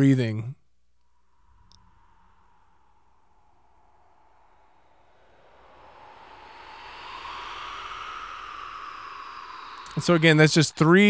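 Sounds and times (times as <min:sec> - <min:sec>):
breathing sounds: 0:01.0 - 0:11.0.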